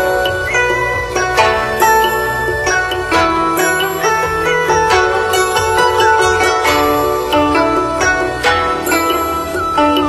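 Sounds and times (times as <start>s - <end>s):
plucked zither melody: 0.0s - 10.0s.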